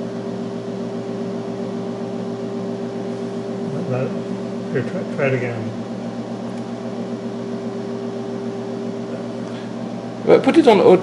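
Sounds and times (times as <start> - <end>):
electrical hum with high tone: 0.0 - 11.0.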